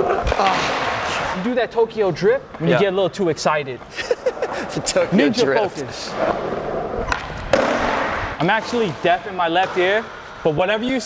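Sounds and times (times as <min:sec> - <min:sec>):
skateboard wheels rolling on concrete: 0:03.8 - 0:11.0
skateboard clacking: 0:07.0 - 0:08.1.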